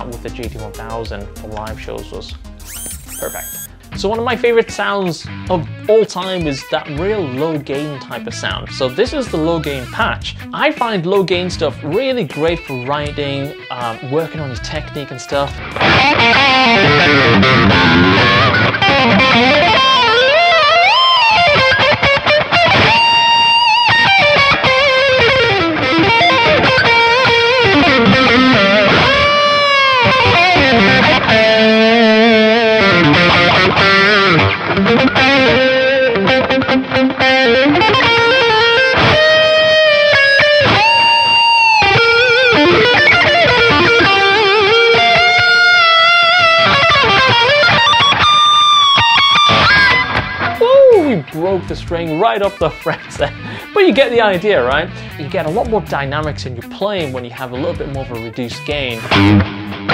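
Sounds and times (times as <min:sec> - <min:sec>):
overdriven electric guitar lead: 0:02.3 - 0:04.2, 0:14.7 - 0:55.6, 0:58.8 - 0:59.9.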